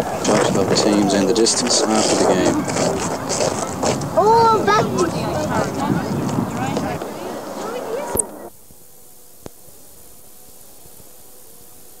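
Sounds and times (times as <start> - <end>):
outdoor voices: 0.0 - 8.6
tape hiss: 5.1 - 12.0.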